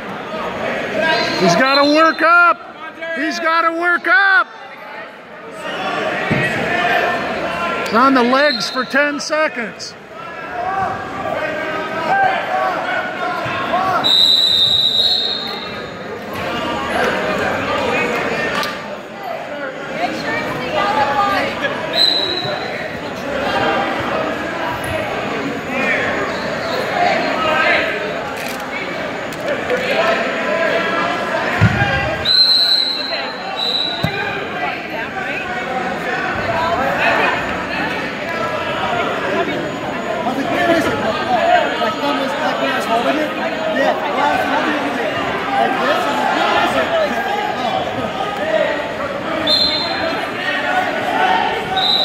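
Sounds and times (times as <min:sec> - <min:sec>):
echoing voices and chatter: 0:00.0 - 0:52.0
referee whistle blasts: 0:14.0 - 0:15.9, 0:21.9 - 0:22.7, 0:32.2 - 0:34.3, 0:49.4 - 0:50.2, 0:51.7 - 0:52.0.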